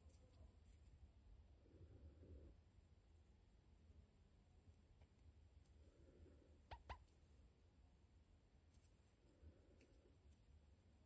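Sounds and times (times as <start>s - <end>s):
faint squeaky chirps: 6.6s - 7.1s.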